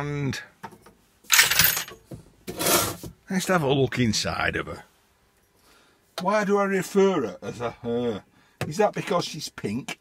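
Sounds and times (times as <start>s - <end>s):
tools clattering on a workbench: 0.6s - 3.2s.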